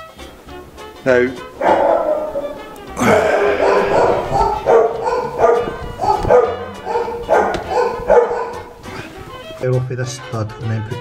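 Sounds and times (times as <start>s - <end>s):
dog barking: 1.3s - 9.6s.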